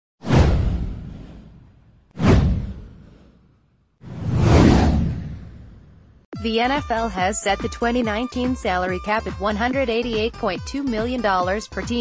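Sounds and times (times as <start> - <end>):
deep boom: 0.2 - 3.2, 4.1 - 6.2
whoosh sound effect: 2.2 - 3.4, 4.0 - 6.0.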